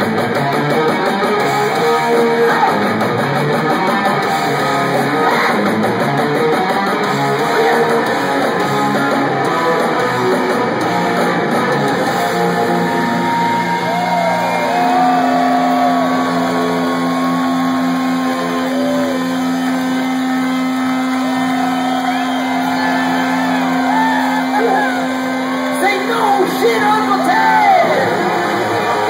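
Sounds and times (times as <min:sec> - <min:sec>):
live rock band: 0:00.0 - 0:29.0
audience whooping: 0:06.6 - 0:29.0.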